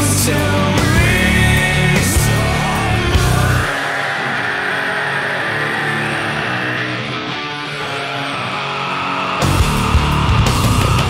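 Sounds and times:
heavy rock electric guitar: 0:00.0 - 0:11.0.

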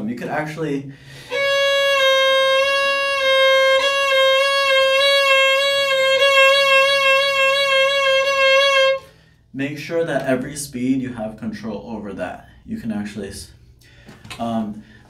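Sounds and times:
violin long note with vibrato: 0:01.2 - 0:09.0.

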